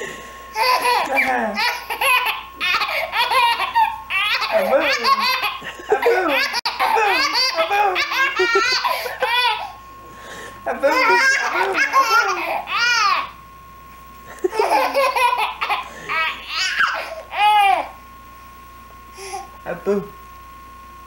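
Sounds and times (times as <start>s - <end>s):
baby laughing hard: 0.6s - 9.8s, 10.9s - 13.2s, 14.4s - 17.8s.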